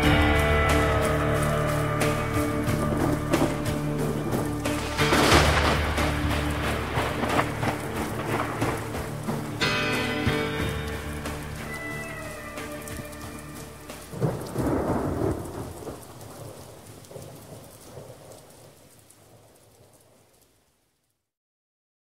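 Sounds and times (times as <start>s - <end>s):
held music chord: 0.0s - 15.3s
thunderclap rumbling: 0.0s - 20.4s
rain: 0.0s - 21.3s.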